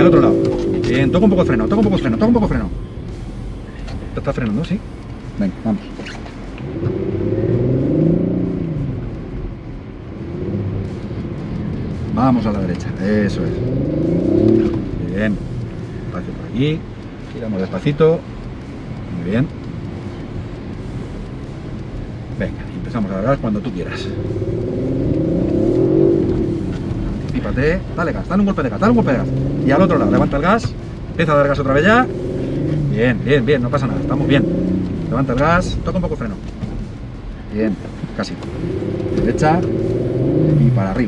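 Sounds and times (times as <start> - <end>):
car engine revving: 0.0 - 41.0.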